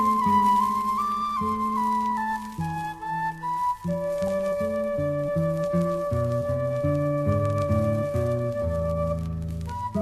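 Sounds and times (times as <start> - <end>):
notched flute melody: 0.0 - 10.0.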